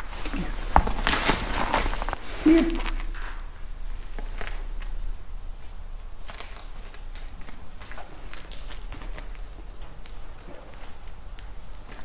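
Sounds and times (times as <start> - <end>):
low steady rumble: 0.0 - 12.0
soft rustles: 0.0 - 12.0.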